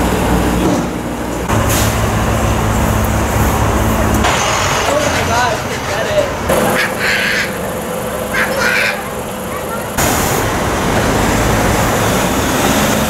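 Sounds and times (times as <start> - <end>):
vehicle engines rumbling: 0.0 - 13.0.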